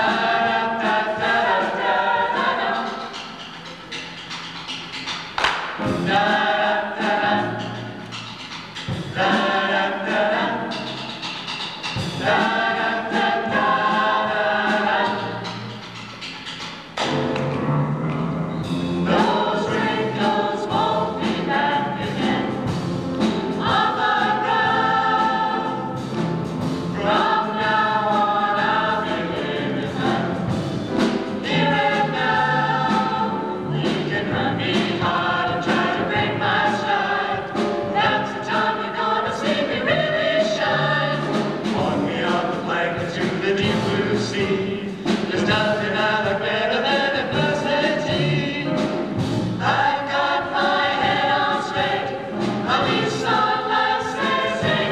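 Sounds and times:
vocal ensemble singing in harmony: 0:00.0 - 0:16.9, 0:18.6 - 0:54.9.

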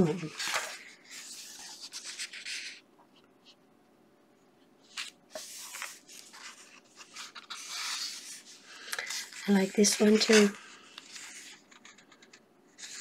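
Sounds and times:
paper pages turning: 0:00.0 - 0:03.6, 0:04.8 - 0:13.0.

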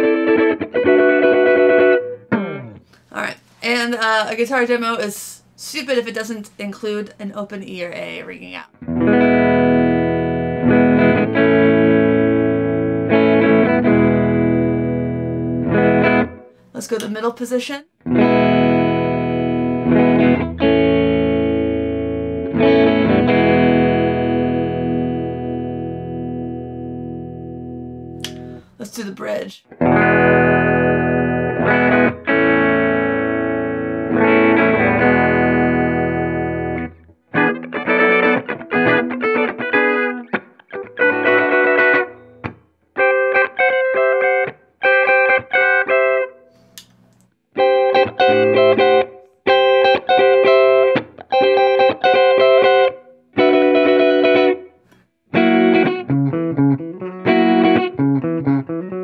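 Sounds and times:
electric guitar chords: 0:00.0 - 0:03.0, 0:08.7 - 0:16.6, 0:18.0 - 0:28.8, 0:29.7 - 0:59.0.

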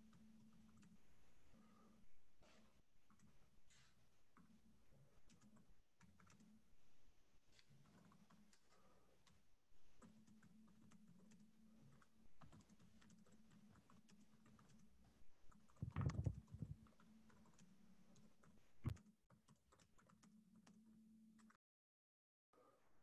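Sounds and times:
computer keyboard typing: 0:00.0 - 0:01.0, 0:05.2 - 0:06.6, 0:07.6 - 0:21.6.

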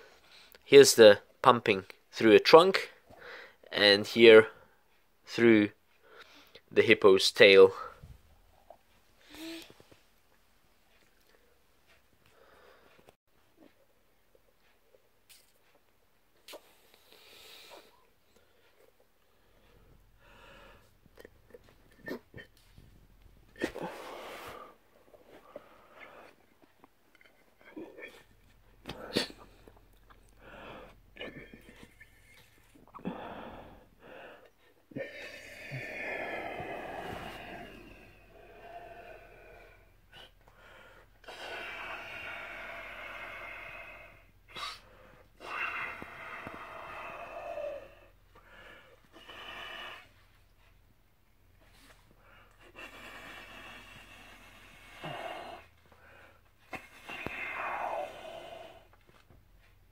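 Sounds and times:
breathing: 0:00.0 - 0:00.6, 0:03.1 - 0:03.6, 0:06.0 - 0:06.7, 0:12.2 - 0:13.2, 0:16.8 - 0:21.0, 0:33.0 - 0:34.8, 0:36.2 - 0:49.1, 0:51.6 - 0:59.0.

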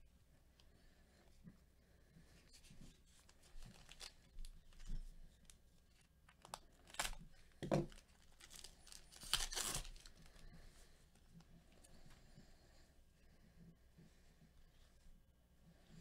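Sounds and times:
handling of cards: 0:02.6 - 0:10.4
foil pack tearing and crinkling: 0:03.5 - 0:04.2, 0:06.3 - 0:07.2, 0:07.9 - 0:10.3.

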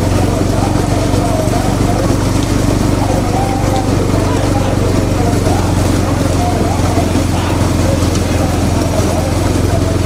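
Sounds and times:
vehicle engines running: 0:00.0 - 0:10.0
voices calling out: 0:00.0 - 0:10.0.

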